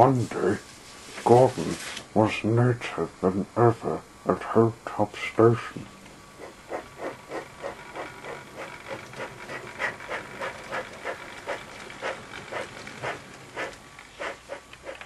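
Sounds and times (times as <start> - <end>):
faint high whine: 0.0 - 8.6
steam locomotive chuffing: 6.4 - 15.0.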